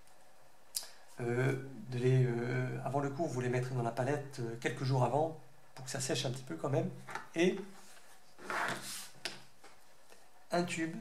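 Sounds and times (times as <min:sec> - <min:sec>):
paint tubes rustling: 0:07.0 - 0:10.2.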